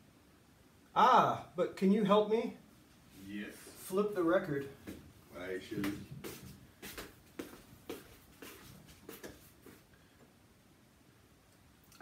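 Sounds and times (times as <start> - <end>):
brush swishing on wood: 3.1 - 9.9.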